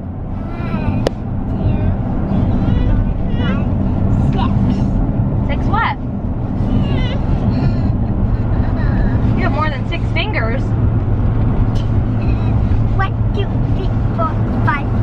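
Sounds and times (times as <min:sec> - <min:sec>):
road and engine rumble in car: 0:00.0 - 0:15.0.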